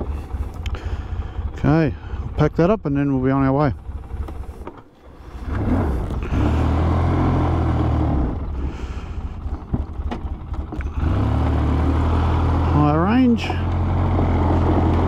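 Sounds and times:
atv engine revving: 0.0 - 15.0.

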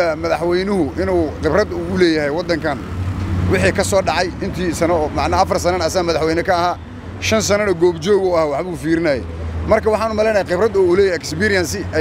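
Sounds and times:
man speaking: 0.0 - 12.0
street traffic rumble: 0.0 - 12.0.

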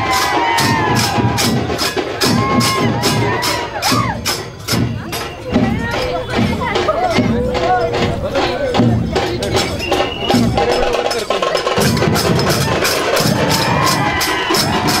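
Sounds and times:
large drums beaten: 0.0 - 15.0
voices calling out: 0.0 - 15.0
hand cymbals clashing: 0.1 - 15.0.

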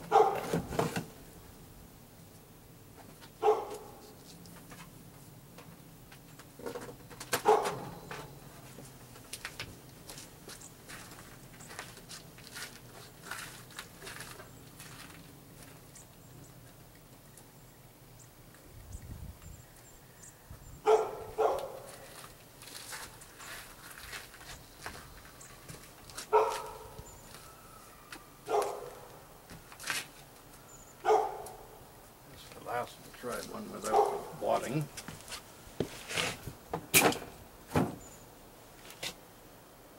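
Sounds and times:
dog barking: 0.1 - 0.5, 3.4 - 4.0, 7.4 - 8.0, 20.8 - 21.9, 26.3 - 27.0, 28.5 - 29.1, 31.0 - 31.7, 33.8 - 34.4.

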